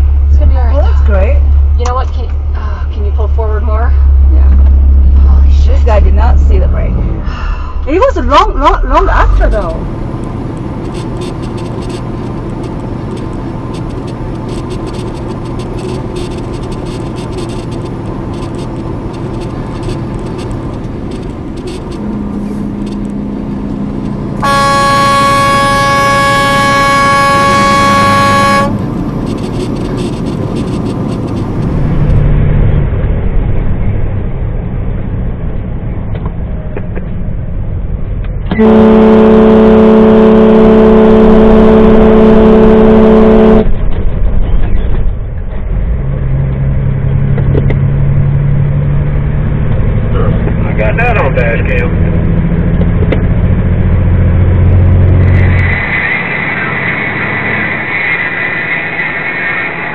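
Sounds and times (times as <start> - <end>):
truck engine and road noise: 0.0 - 59.9
loud horn blast: 24.4 - 30.9, 38.5 - 43.8
lower-pitched horn: 24.4 - 31.4, 38.5 - 43.8.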